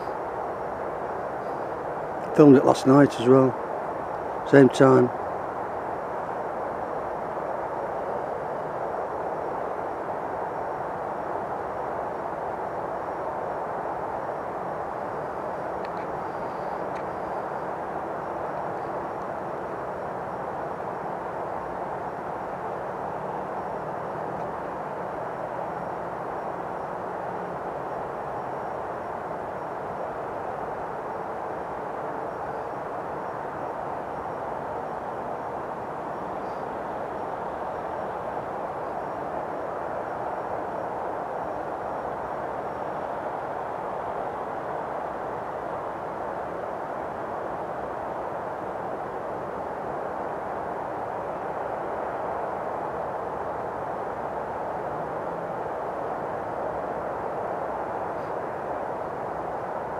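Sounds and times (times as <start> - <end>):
steady outdoor rumble: 0.0 - 59.9.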